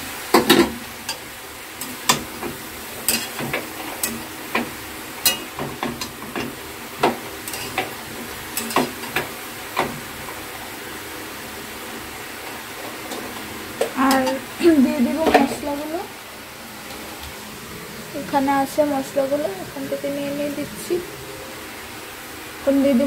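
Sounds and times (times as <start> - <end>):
vegetables sizzling in a pan: 0.0 - 23.0
spatula scraping and clicking on pan: 0.4 - 10.4.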